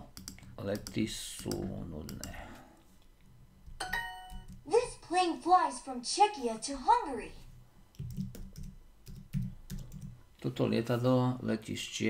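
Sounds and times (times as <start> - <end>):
bright app chime: 3.8 - 4.4.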